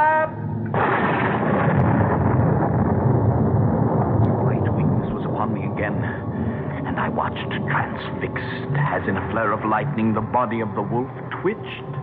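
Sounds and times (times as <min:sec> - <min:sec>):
rolling thunder rumble: 0:00.6 - 0:08.3.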